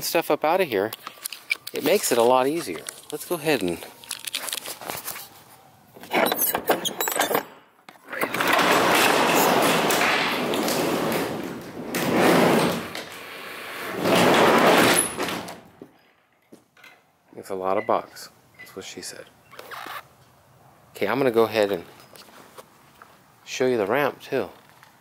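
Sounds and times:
roll-up door rattling open: 6.1 - 13.2, 13.8 - 15.7.

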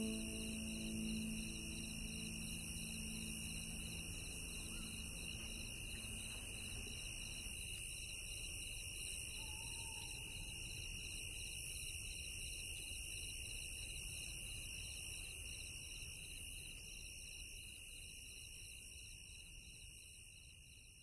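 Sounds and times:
insects trilling: 0.0 - 11.9.

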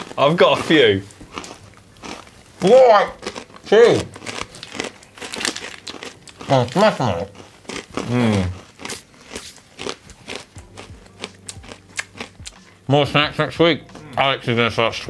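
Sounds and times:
crunching and chewing: 0.0 - 12.8
voiced mm: 7.9 - 9.0.

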